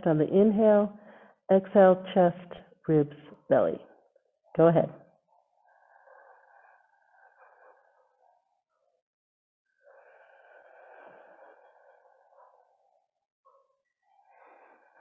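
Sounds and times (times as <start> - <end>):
slow breathing: 0.9 - 1.5, 5.2 - 9.0, 9.7 - 15.0.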